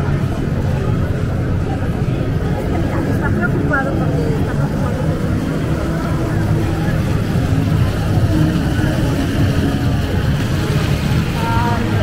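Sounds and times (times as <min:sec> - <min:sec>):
steady low rumble: 0:00.0 - 0:12.0
voices of passers-by: 0:00.0 - 0:12.0.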